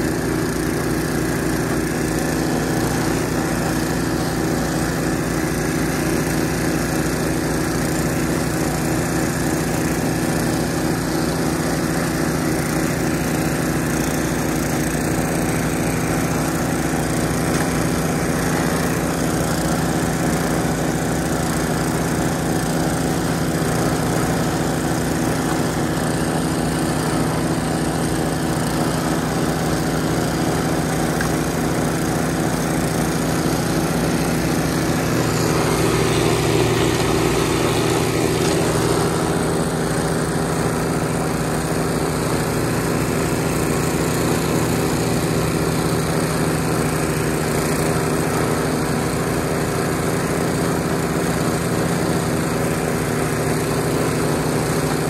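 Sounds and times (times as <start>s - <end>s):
snowblower engine running: 0.0s - 55.0s.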